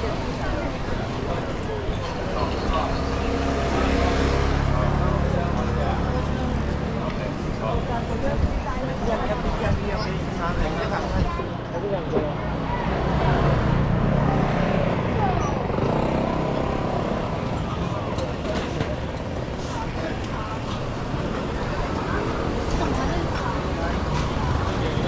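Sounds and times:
motor scooters passing: 0.0 - 8.2, 10.2 - 25.0
chatter of passers-by: 0.0 - 25.0.

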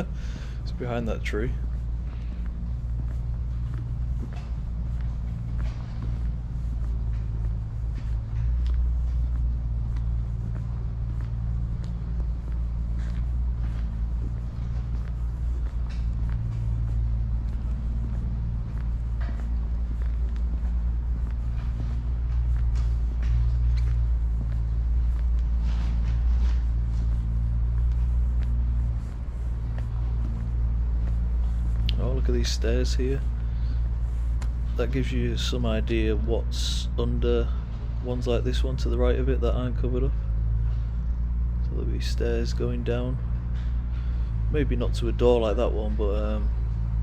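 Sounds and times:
footsteps on tarmac: 0.0 - 47.0
low rumble: 0.0 - 47.0.

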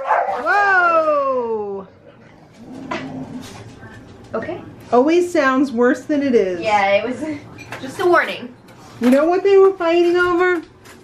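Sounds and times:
dog growling: 2.0 - 3.8.

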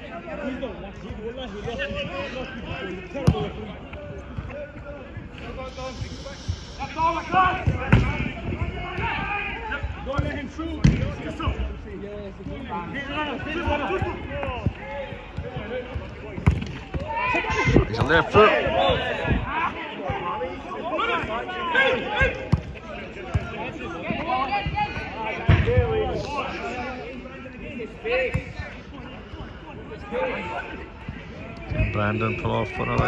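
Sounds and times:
players shouting: 6.8 - 11.7, 12.6 - 33.0
football being kicked: 16.4 - 17.0.

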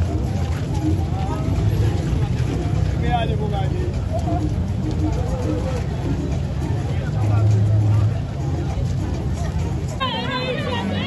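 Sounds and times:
dense low crowd rumble: 0.0 - 11.0
voices calling out: 4.2 - 11.0.

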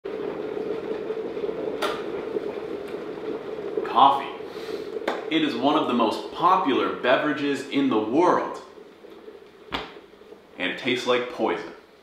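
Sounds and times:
electric kettle heating water: 0.0 - 12.0.

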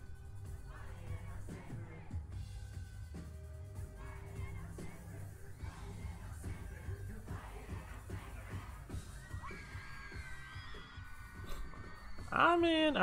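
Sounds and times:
crowd cheering and screaming: 8.4 - 13.0.

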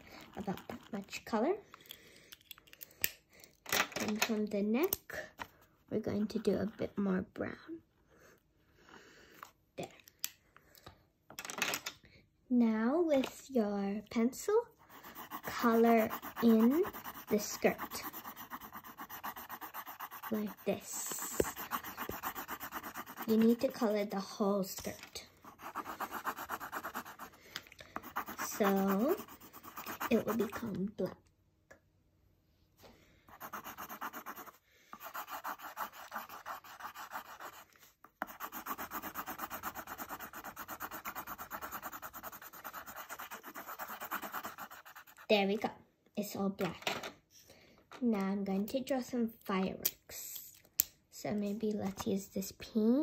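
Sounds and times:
pencil shading on paper: 14.8 - 24.2, 25.4 - 27.4, 28.0 - 30.7, 33.3 - 45.3.

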